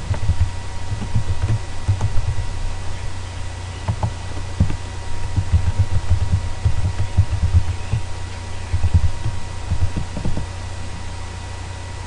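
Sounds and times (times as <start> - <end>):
computer keyboard typing: 0.0 - 2.4, 3.9 - 8.1, 8.7 - 10.5
steady low hum: 0.0 - 12.0.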